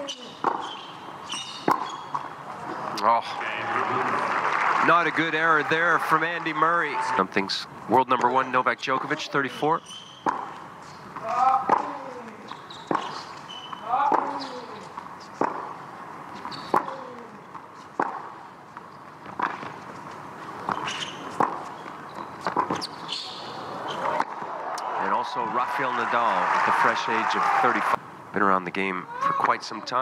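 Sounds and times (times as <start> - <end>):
tennis racket hitting ball: 0.0 - 0.8, 1.4 - 2.3, 10.2 - 15.8, 16.4 - 18.4, 20.6 - 22.9
tennis ball bouncing: 0.0 - 2.8, 9.9 - 15.8, 16.4 - 23.2
crowd noise: 2.2 - 17.5, 20.3 - 30.0.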